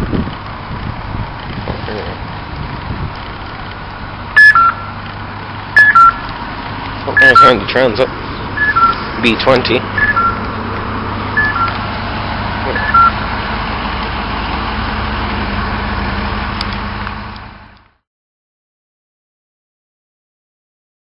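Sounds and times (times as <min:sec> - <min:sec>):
vehicle engine hum: 0:00.0 - 0:18.0
two-note falling electronic beep: 0:04.4 - 0:05.0, 0:05.8 - 0:06.2, 0:07.2 - 0:07.6, 0:08.6 - 0:09.0, 0:10.0 - 0:10.4, 0:11.4 - 0:11.8, 0:12.7 - 0:13.2.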